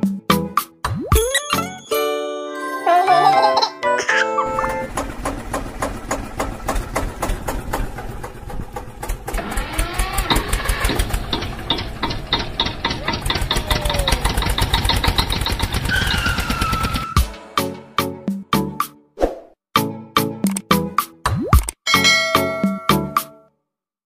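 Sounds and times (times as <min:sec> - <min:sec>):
vehicle engine knocking: 0:04.7 - 0:17.1.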